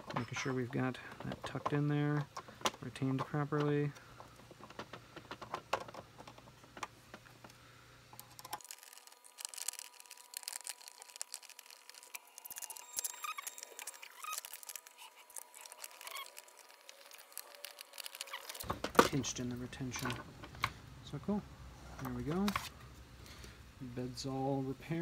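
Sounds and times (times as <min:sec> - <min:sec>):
scratchy rustling: 0:08.5 - 0:18.7.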